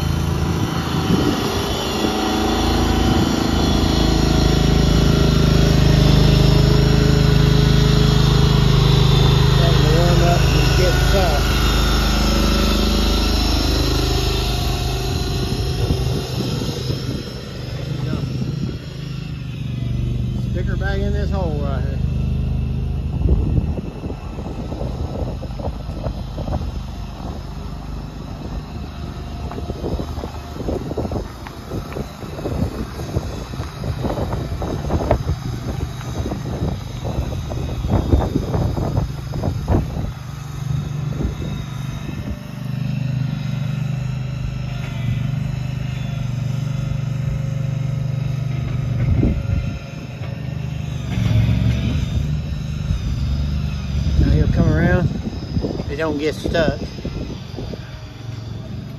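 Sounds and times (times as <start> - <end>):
engine running steadily: 0.0 - 58.9.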